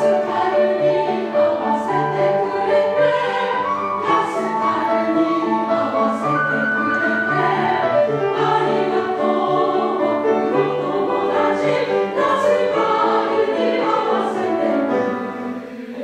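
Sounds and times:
piano accompaniment: 0.0 - 16.0
women's choir singing: 0.0 - 16.0.

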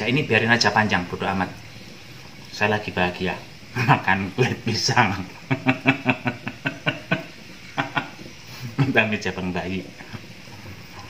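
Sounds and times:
man laughing: 3.8 - 9.0.

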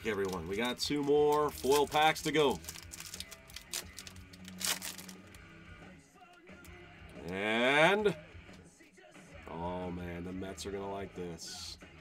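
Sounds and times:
foil wrapper crinkling and tearing: 0.0 - 5.4
faint background music: 0.0 - 12.0.

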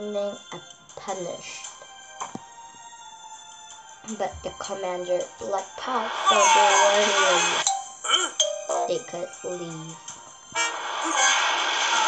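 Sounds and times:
loud rushing sound effect: 10.7 - 12.0.

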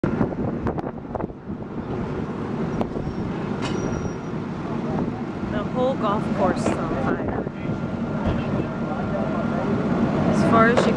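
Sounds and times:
fire truck engine rumbling: 0.0 - 10.9.

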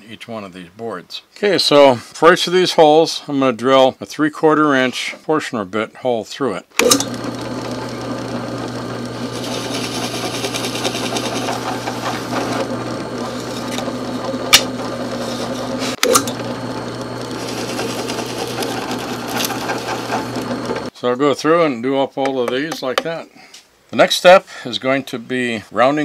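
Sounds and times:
sharp click: 6.8 - 7.1
drill press boring wood: 6.8 - 20.9.

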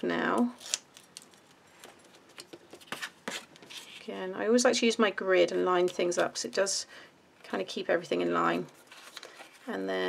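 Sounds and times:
card and tape rustling: 8.7 - 9.7.

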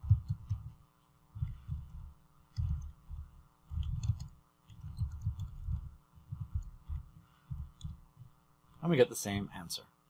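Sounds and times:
keyboard typing thuds: 0.0 - 0.8, 1.4 - 8.4
faint electrical hum: 0.0 - 10.0.

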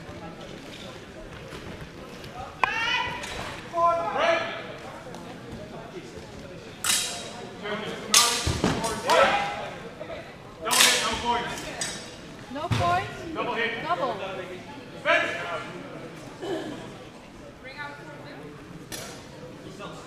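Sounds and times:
people shouting: 2.6 - 4.6
swords clashing: 6.8 - 7.3.

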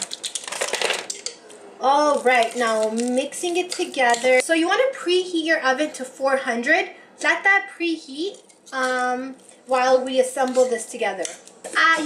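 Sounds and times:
plastic measuring spoons clattering: 0.0 - 1.4
spoon tapping mixing bowl: 3.6 - 4.4.

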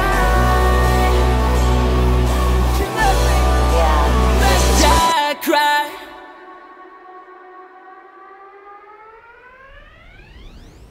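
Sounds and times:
sustained tone with overtones: 0.0 - 10.9.

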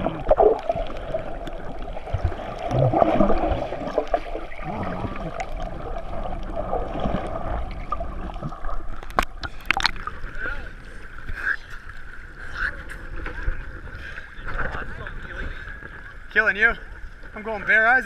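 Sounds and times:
muffled underwater rushing water: 0.0 - 18.0
sharp water splashes: 2.0 - 10.2.

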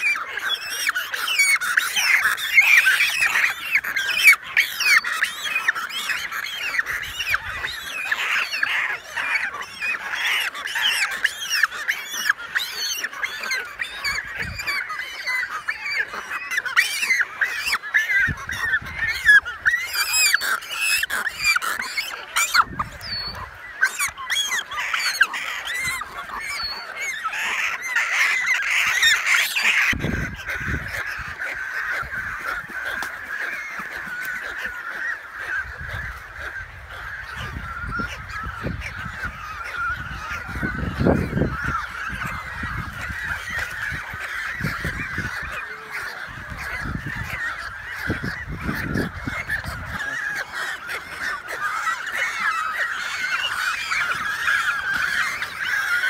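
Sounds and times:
seabird colony calling: 0.0 - 56.0.

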